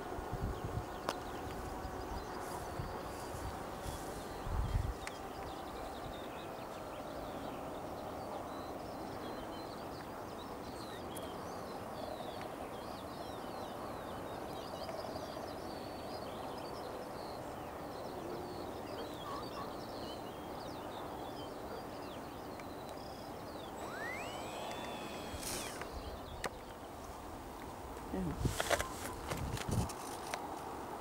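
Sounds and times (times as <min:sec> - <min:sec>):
outdoor background hiss: 0:00.0 - 0:31.0
small birds chirping: 0:00.4 - 0:29.3
rising whistle: 0:23.8 - 0:26.0.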